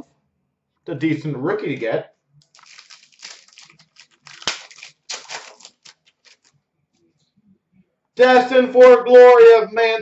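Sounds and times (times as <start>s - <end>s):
foil pack crinkling: 2.4s - 6.5s.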